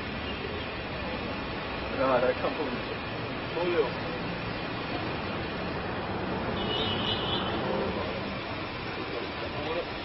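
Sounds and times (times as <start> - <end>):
road vehicle rumble and hiss: 0.0 - 10.0.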